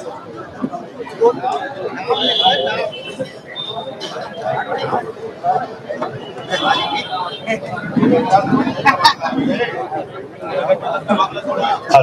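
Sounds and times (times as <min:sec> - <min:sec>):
people talking over each other: 0:00.0 - 0:12.0.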